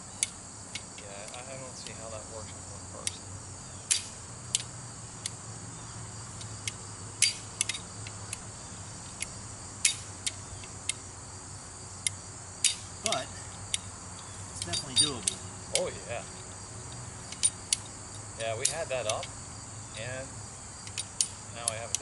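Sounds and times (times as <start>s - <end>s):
crickets chirping: 0.0s - 22.0s
winch ratchet clicking: 16.9s - 19.4s.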